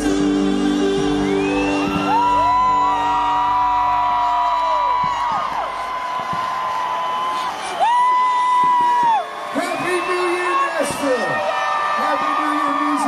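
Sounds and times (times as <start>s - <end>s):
music: 0.0s - 7.0s
crowd whooping and yelling: 0.0s - 13.0s.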